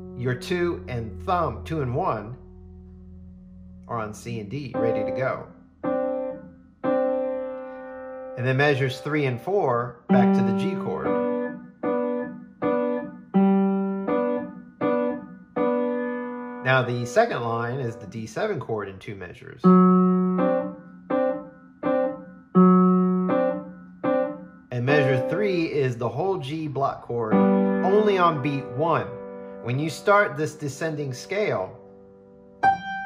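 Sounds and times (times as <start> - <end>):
piano chord: 0.0 - 9.3, 10.1 - 18.1, 19.7 - 30.4, 31.3 - 33.0.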